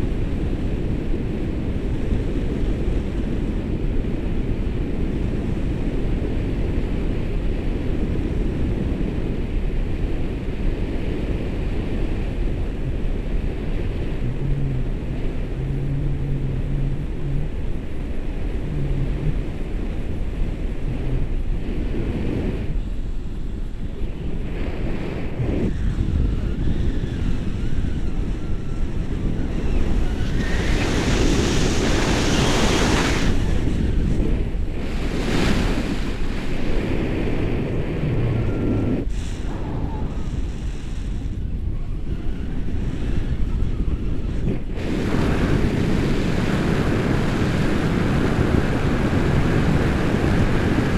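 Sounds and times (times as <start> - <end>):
wind rushing over microphone: 0.0 - 50.9.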